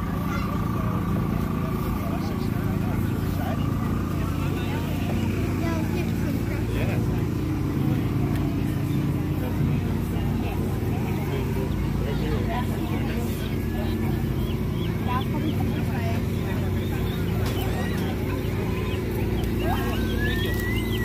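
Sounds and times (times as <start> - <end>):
engine running steadily: 0.0 - 21.0
people chattering: 0.0 - 21.0.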